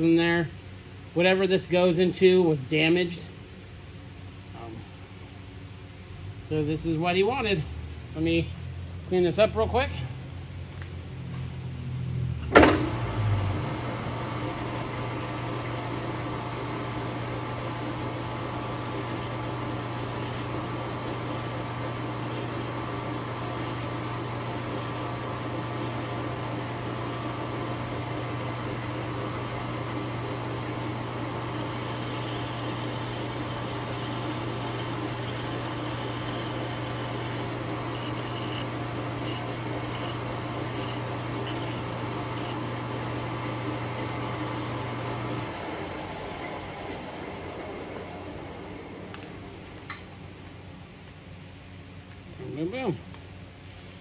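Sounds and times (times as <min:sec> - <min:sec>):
lathe starting clunk: 0:12.4 - 0:13.1
metal lathe motor humming: 0:13.6 - 0:48.6
file scraping spinning metal: 0:18.3 - 0:27.7, 0:30.2 - 0:42.6.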